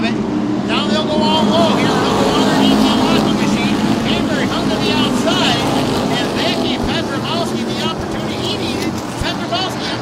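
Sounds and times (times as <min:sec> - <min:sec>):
race car engines droning: 0:00.0 - 0:10.0.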